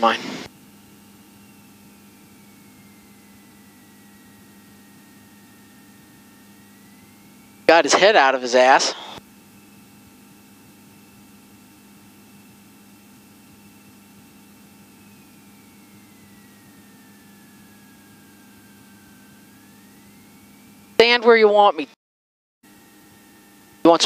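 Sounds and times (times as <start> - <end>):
aircraft engine hum through headset: 0.0 - 21.9, 22.7 - 24.0
thin high whine: 0.0 - 22.0, 22.6 - 24.0.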